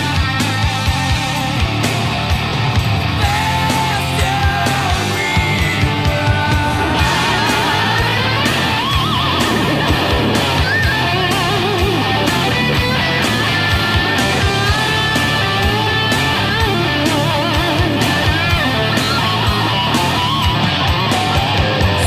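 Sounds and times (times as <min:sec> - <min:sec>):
distorted metal band: 0:00.0 - 0:22.0
lead electric guitar bends: 0:00.0 - 0:22.0.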